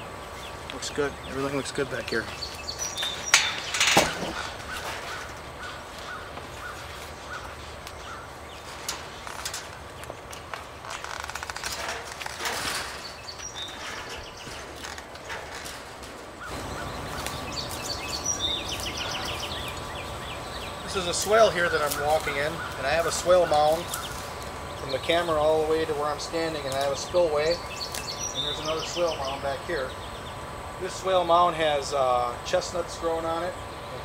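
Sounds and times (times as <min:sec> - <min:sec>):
birds chirping and singing: 0:00.0 - 0:34.0
low outdoor background: 0:00.0 - 0:34.0.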